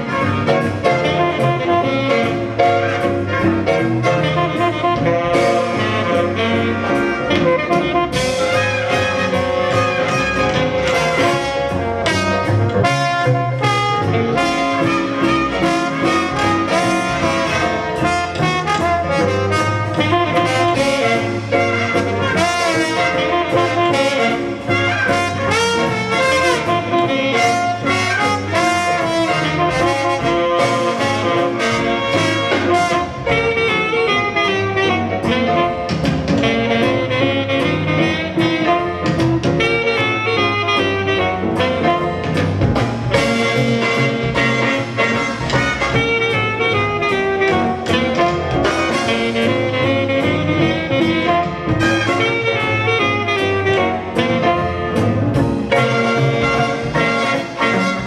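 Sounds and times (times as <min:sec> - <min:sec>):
jazz big band playing: 0:00.0 - 0:58.0
steady drum hits: 0:00.0 - 0:58.0.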